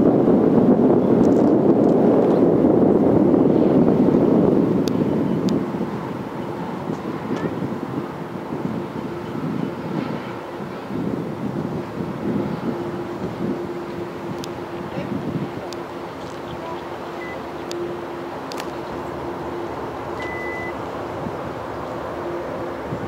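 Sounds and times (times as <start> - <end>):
distant jet engine rumble: 0.0 - 23.0
wind noise on microphone: 0.0 - 23.0.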